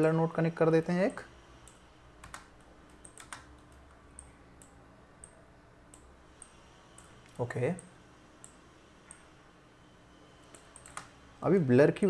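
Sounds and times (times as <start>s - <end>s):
keyboard and mouse clicks: 1.6s - 7.1s, 10.5s - 11.1s.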